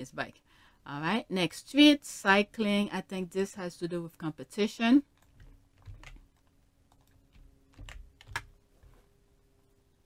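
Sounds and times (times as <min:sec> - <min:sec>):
faint steady hum: 0:00.0 - 0:10.0
keyboard and mouse clicks: 0:05.1 - 0:08.6.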